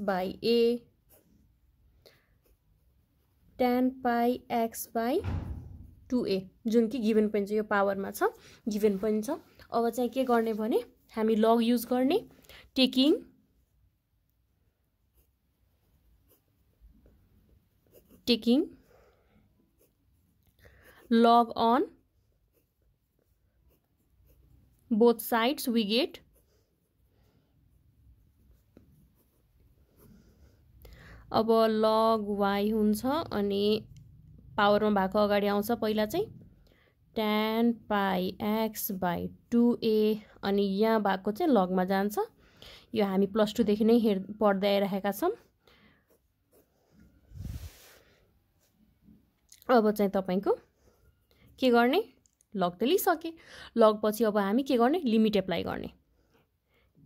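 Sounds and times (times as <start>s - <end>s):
pen scratching on paper: 0.7s - 1.6s, 2.3s - 3.0s, 15.0s - 30.8s, 45.3s - 48.0s.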